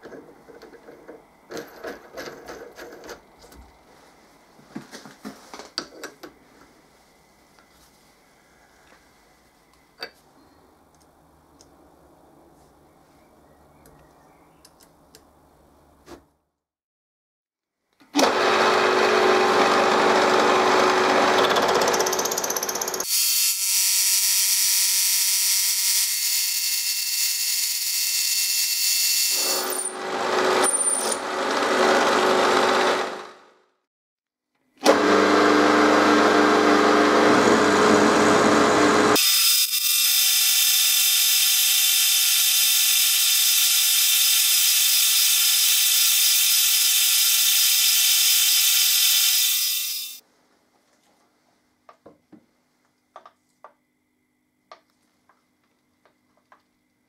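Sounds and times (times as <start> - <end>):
milling machine cutting metal: 36.2 - 50.2
high-pitched machine whine: 39.1 - 50.2.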